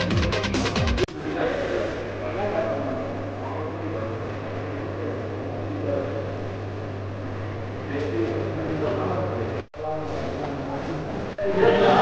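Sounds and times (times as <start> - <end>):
men talking indistinctly: 1.1 - 6.6, 7.3 - 12.0.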